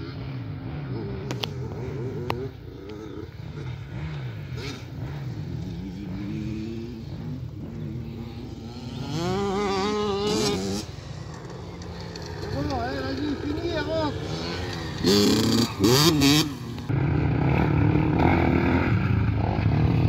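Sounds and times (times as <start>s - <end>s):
dirt bike engines revving: 0.0s - 20.0s.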